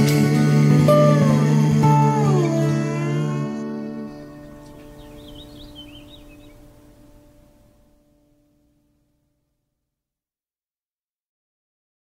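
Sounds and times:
acoustic guitar chord ringing: 0.0 - 9.4
high warbling bird call: 0.9 - 6.8.

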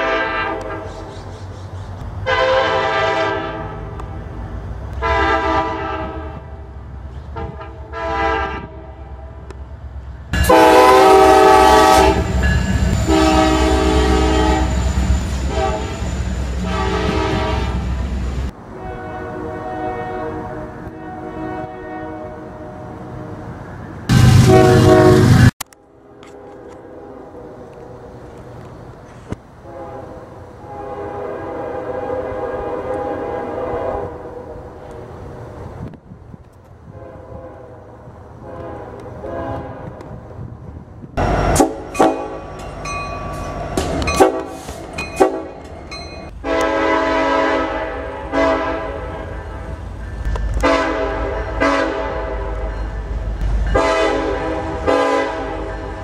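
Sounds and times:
locomotive air horn blasts: 0.0 - 0.9, 2.2 - 4.1, 5.0 - 6.7, 7.4 - 9.5, 10.4 - 18.1, 18.7 - 23.4, 24.1 - 27.5, 29.6 - 34.6, 36.8 - 40.1, 41.2 - 42.6, 44.0 - 45.6, 46.3 - 49.8, 50.4 - 52.9, 53.7 - 56.0.

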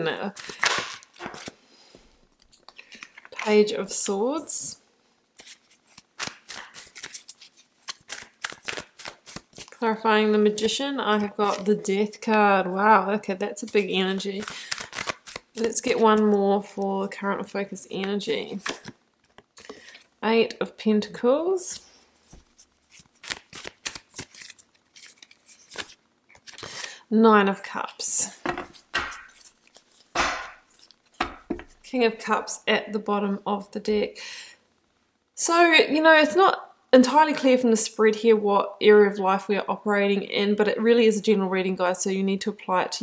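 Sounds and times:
cards being shuffled by hand: 0.2 - 1.6, 5.4 - 11.8, 13.6 - 16.9, 18.0 - 20.1, 22.2 - 27.0, 28.5 - 31.9.

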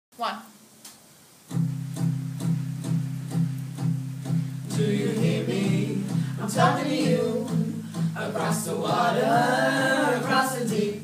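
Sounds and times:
guitar chord strumming: 1.5 - 11.0.

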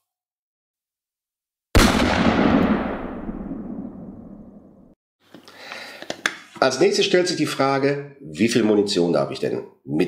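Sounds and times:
boom sound effect: 1.8 - 4.9.

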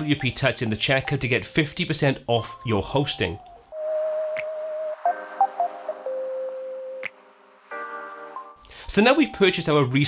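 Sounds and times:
synthesizer held note: 3.7 - 8.6.

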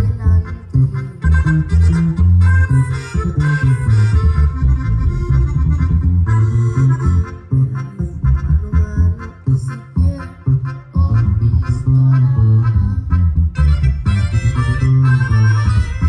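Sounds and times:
accordion: 0.0 - 16.0
heavy rhythmic bass line: 0.0 - 16.0
boy singing into a microphone: 7.6 - 13.1.

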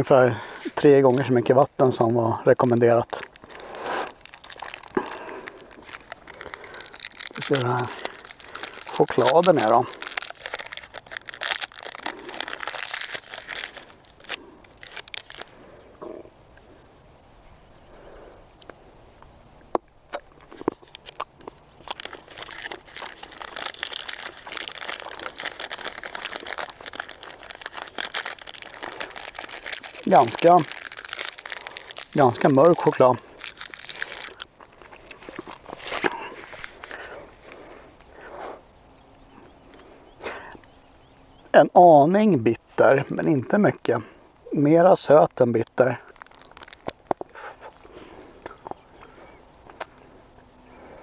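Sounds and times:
plastic packaging crinkling: 0.7 - 15.7, 20.1 - 38.2, 45.0 - 50.2.

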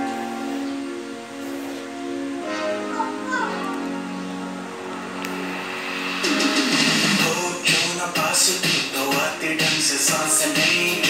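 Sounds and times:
held synth chord: 0.0 - 7.7.

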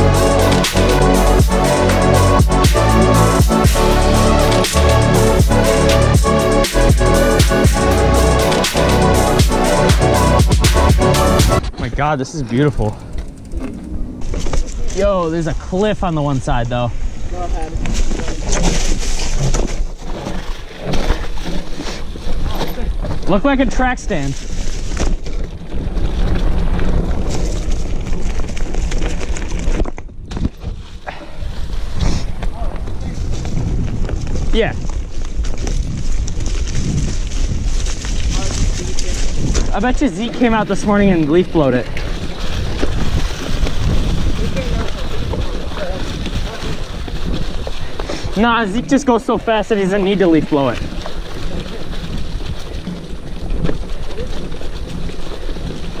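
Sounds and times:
bike clicking and rattling: 7.4 - 56.0
bike knocks and rattles: 11.6 - 15.2
bike tyres crunching on leaves: 12.5 - 56.0
wind buffeting microphone: 12.8 - 56.0.

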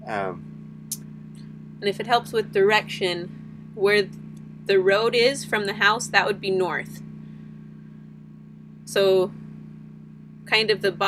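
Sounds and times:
low mechanical hum: 0.0 - 11.0
person speaking: 0.1 - 0.4.

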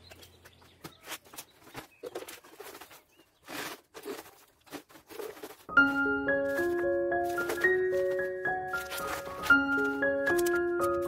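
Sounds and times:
hands rustling dry potting mix: 0.0 - 11.0.

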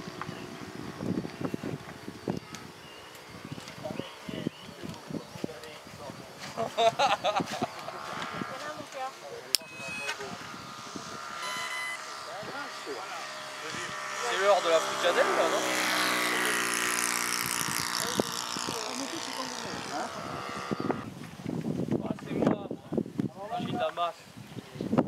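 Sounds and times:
model airplane engine droning: 0.0 - 21.2
people talking: 3.7 - 7.6, 8.4 - 16.8, 17.7 - 20.9, 22.0 - 24.2.

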